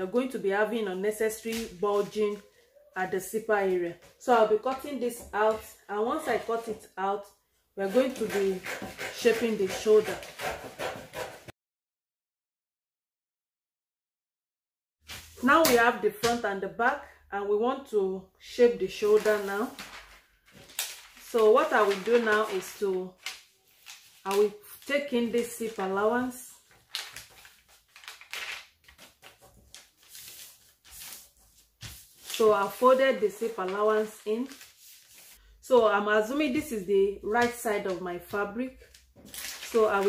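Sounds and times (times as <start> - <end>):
scissors cutting paper: 7.8 - 11.5
paper rustling and crinkling: 15.1 - 15.7, 18.9 - 35.4, 38.8 - 40.0.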